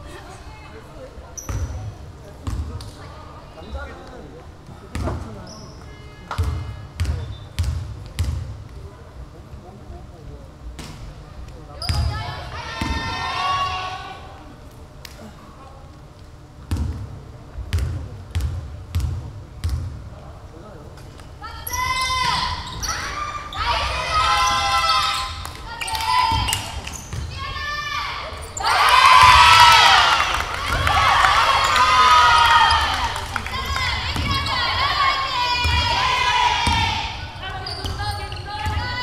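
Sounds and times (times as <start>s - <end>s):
women shouting: 21.4s - 37.4s, 38.5s - 39.0s.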